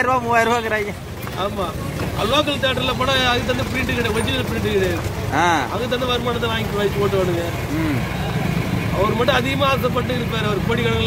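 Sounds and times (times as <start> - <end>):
man speaking: 0.0 - 8.1.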